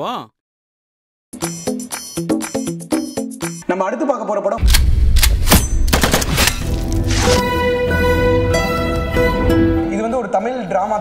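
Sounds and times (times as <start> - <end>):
gunshots: 4.6 - 7.4.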